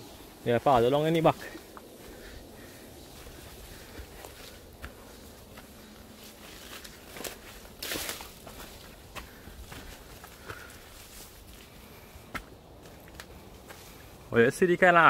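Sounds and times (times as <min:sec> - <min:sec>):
dry leaves and twigs crunching: 0:00.0 - 0:14.3
footsteps on dirt trail: 0:00.0 - 0:14.3.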